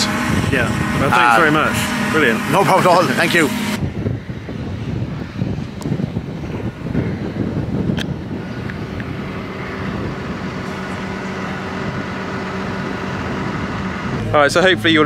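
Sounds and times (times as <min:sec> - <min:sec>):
tractor engine running: 0:00.0 - 0:15.0
wind buffeting microphone: 0:00.0 - 0:15.0.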